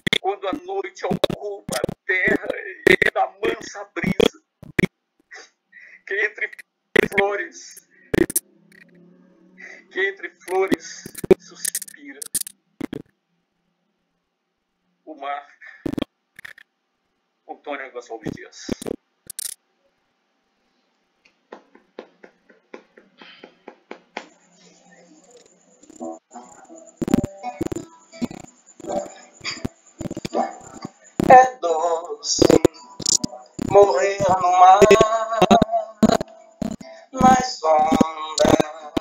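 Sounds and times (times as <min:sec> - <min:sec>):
man speaking verse: 0:00.2 - 0:04.3, 0:06.1 - 0:07.8, 0:17.5 - 0:18.8
hand claps: 0:21.3 - 0:24.4.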